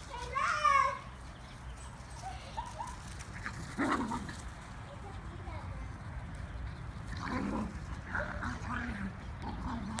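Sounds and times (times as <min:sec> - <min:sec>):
puppies yipping and barking: 0:01.8 - 0:04.4.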